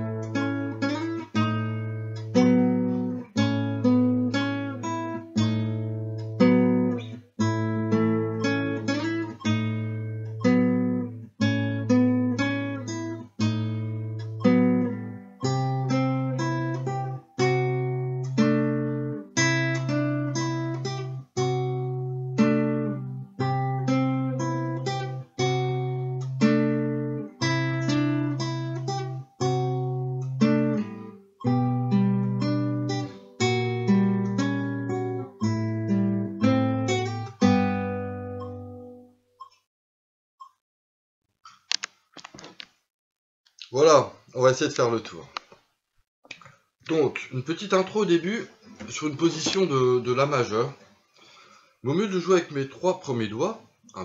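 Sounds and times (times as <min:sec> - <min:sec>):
classical guitar fingerpicked slowly: 0:00.0 - 0:39.1.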